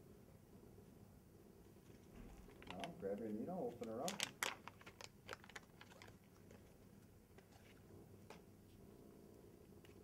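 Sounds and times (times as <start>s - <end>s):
peel pack crackling open: 2.3s - 3.0s, 3.7s - 6.8s.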